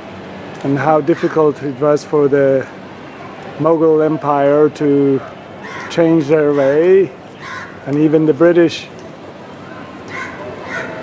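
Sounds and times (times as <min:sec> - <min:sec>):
outdoor background noise: 0:00.0 - 0:11.0
faint animal calls: 0:05.1 - 0:07.9, 0:09.6 - 0:11.0.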